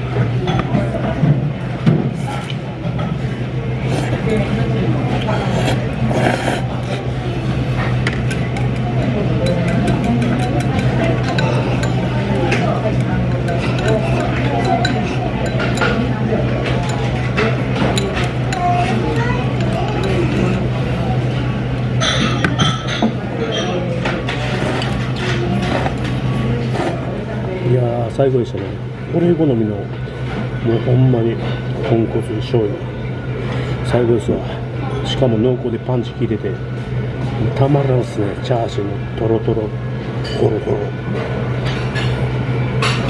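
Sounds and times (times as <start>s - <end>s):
steady low hum: 0.0s - 43.0s
indistinct voices: 3.6s - 27.5s.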